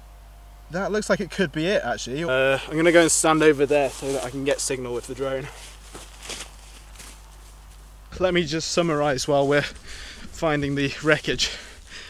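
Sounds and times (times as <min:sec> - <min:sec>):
low steady rumble: 0:00.0 - 0:12.0
footsteps running through grass: 0:02.6 - 0:08.0, 0:08.7 - 0:12.0.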